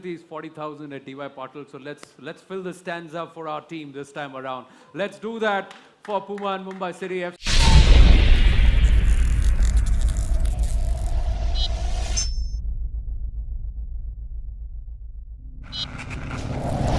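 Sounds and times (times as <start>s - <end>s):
deep boom with low rumble: 7.5s - 12.0s, 12.6s - 15.7s.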